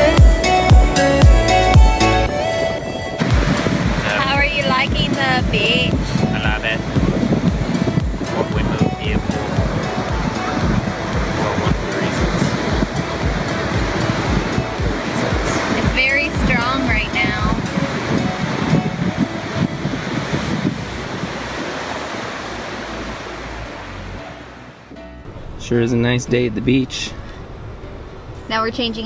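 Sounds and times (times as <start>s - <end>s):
music with steady beat: 0.0s - 20.2s
ocean surf: 0.0s - 29.0s
wind on microphone: 2.3s - 24.3s.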